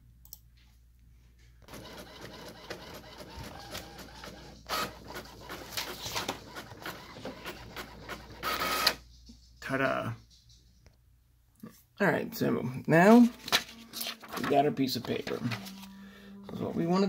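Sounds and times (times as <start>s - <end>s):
inkjet printer printing: 1.6s - 9.0s.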